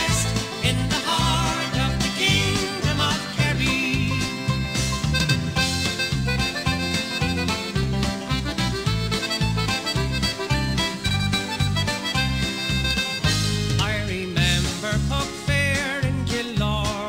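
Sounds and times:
country-style ballad instrumental: 0.0 - 17.0
steady bass beat: 0.0 - 17.0.

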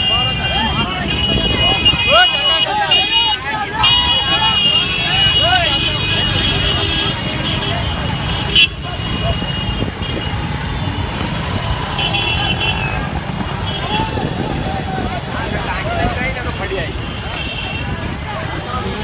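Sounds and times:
vehicle horns blaring: 0.0 - 14.6, 16.5 - 18.0
excited crowd voices: 0.0 - 19.0
street traffic rumble: 0.0 - 19.0.

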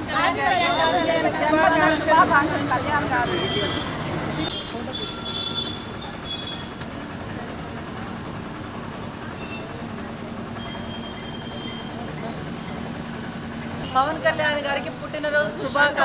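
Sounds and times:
passing vehicle rumble: 0.0 - 5.0.

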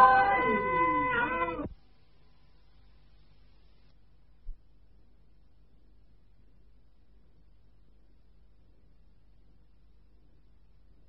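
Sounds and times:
high wavering voice: 0.0 - 1.7
tape hiss: 0.0 - 11.0.

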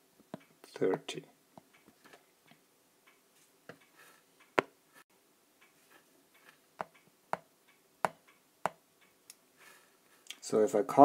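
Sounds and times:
soft ticks: 1.6 - 4.7, 5.6 - 9.4.

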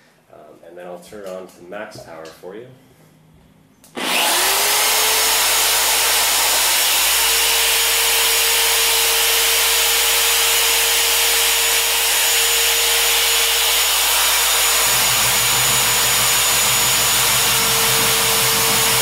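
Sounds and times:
polisher motor whine: 4.0 - 19.0.

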